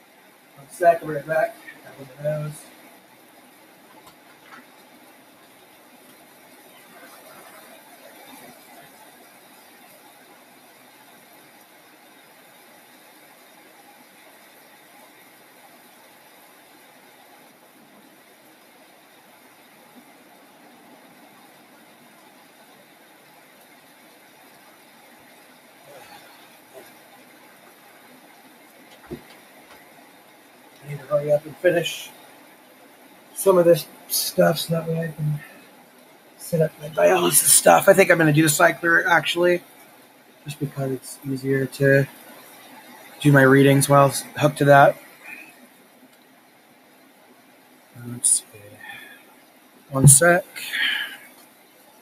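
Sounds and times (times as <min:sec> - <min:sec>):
faint steady hiss: 0:00.0 - 0:52.0.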